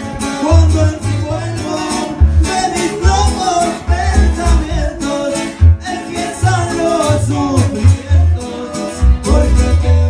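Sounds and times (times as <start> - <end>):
acoustic guitars strummed: 0.0 - 10.0
deep bass notes: 0.0 - 10.0
person singing: 0.4 - 10.0.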